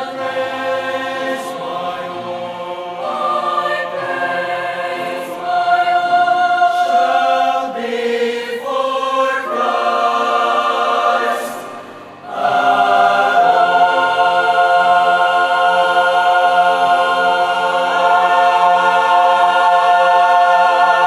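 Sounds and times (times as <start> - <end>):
mixed choir singing in harmony: 0.0 - 21.0.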